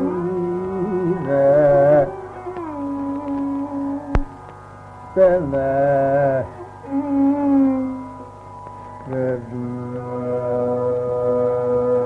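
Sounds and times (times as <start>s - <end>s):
sustained classical vocal notes: 0.0s - 12.0s.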